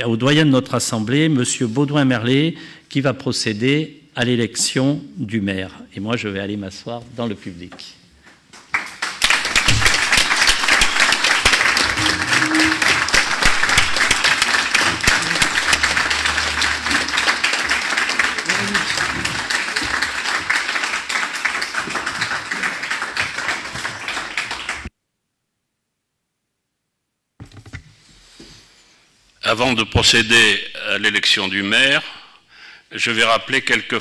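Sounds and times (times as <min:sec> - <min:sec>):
crowd applauding: 0:08.7 - 0:24.9.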